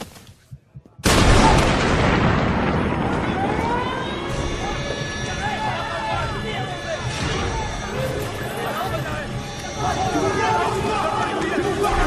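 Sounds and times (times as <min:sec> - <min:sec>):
film music: 0:01.8 - 0:12.0
people shouting: 0:03.2 - 0:12.0.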